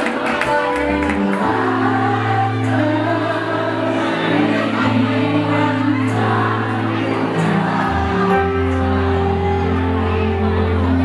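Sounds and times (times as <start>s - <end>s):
live rock band: 0.0s - 5.6s
electric guitar chords: 0.0s - 11.0s
woman singing: 0.0s - 11.0s.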